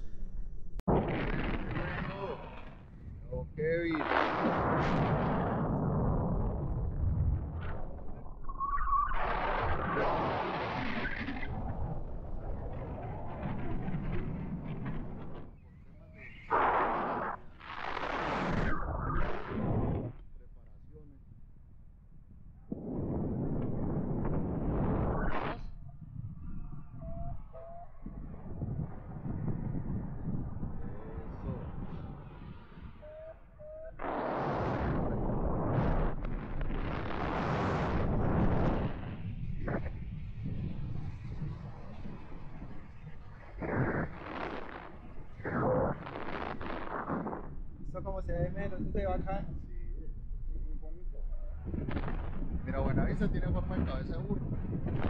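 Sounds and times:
wind gusts: 0.0s - 55.0s
wind buffeting microphone: 0.8s - 20.2s, 21.0s - 55.0s.

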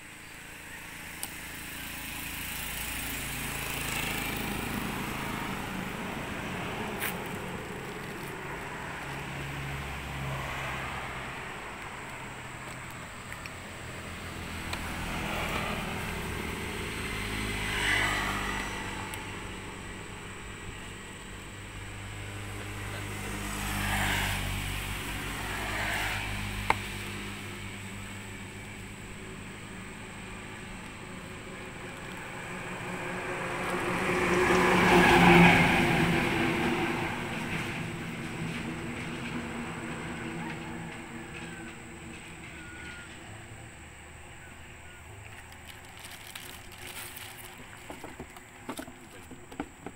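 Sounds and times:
vehicles passing by: 0.0s - 49.9s.

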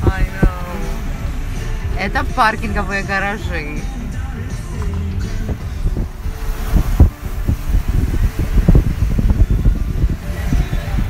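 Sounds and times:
car road noise: 0.0s - 11.0s
wind buffeting microphone: 0.0s - 11.0s.

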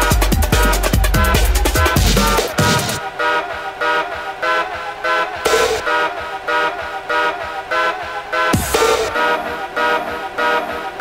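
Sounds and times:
synth chord stabs: 0.0s - 11.0s.

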